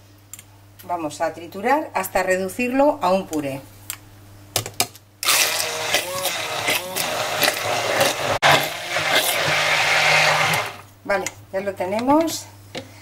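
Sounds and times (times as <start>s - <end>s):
immersion blender running: 5.2s - 10.9s.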